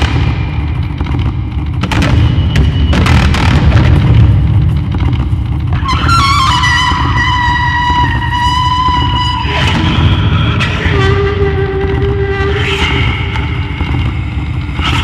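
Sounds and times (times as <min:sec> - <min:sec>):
rough low rumble: 0:00.0 - 0:15.0
bowed wooden blade instrument: 0:05.7 - 0:13.8.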